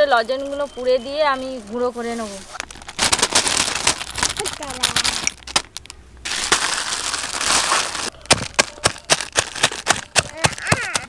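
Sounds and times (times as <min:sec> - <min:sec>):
crinkling and grinding of candy: 0:02.4 - 0:11.0
pestle striking stone: 0:08.3 - 0:11.0.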